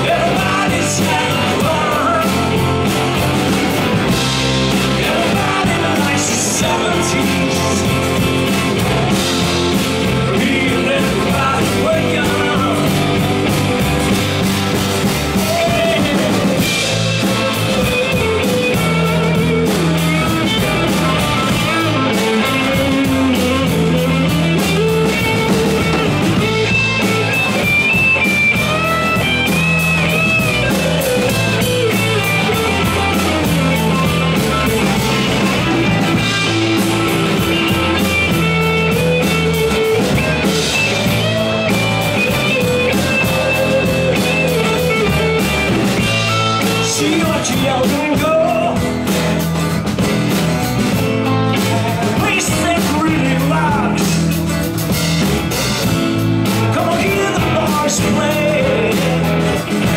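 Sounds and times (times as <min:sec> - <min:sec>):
blues-rock band playing: 0:00.0 - 0:59.9
electric guitar solo: 0:12.5 - 0:47.9.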